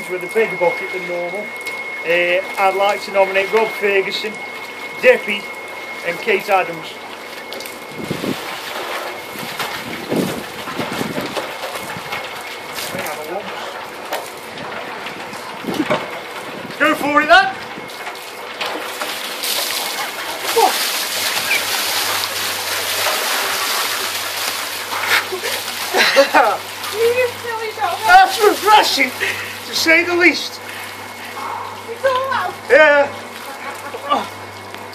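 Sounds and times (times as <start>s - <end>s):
water sloshing in mixer drum: 0.0s - 34.9s.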